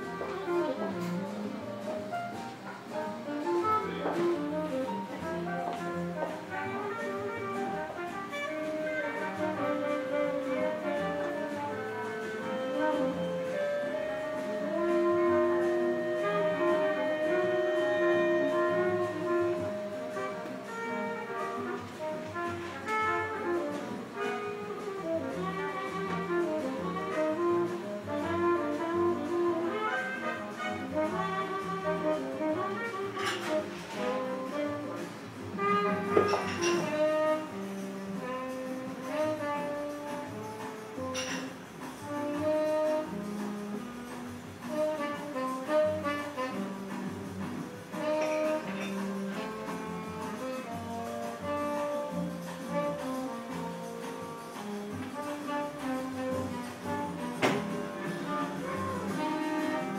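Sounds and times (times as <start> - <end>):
jazz from a vinyl record: 0.0 - 59.9.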